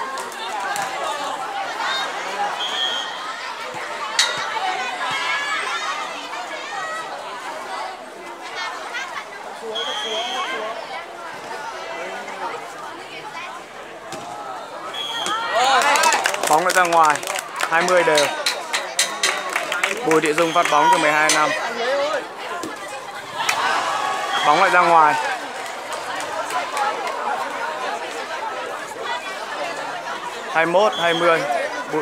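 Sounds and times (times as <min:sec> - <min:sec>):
crowd chattering and calling out: 0:00.0 - 0:32.0.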